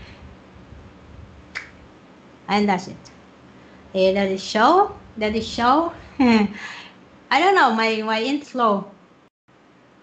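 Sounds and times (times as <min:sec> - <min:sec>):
short sharp click: 0:01.5 - 0:01.8.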